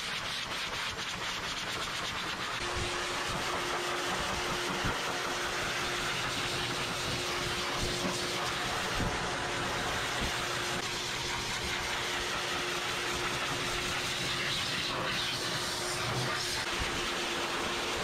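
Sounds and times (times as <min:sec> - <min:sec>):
pet dryer blowing air: 0:00.0 - 0:18.0.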